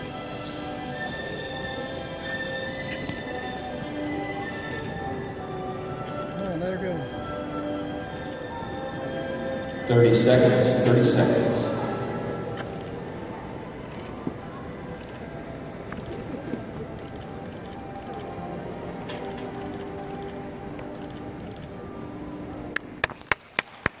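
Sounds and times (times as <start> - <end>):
distant voices: 0.0 - 23.0
faint music: 0.0 - 23.0
sharp clicks: 12.5 - 13.0, 14.9 - 18.4, 19.0 - 21.7.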